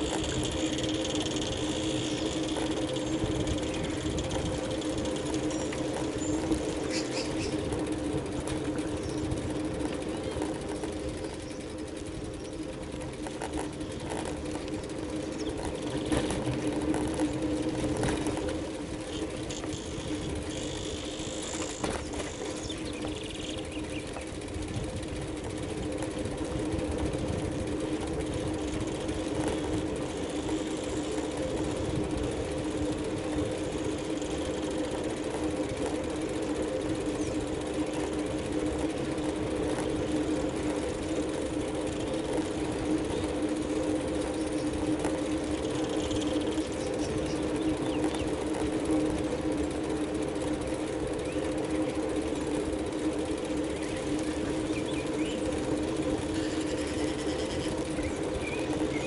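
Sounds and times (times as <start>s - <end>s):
bicycle rolling on asphalt: 0.0s - 59.0s.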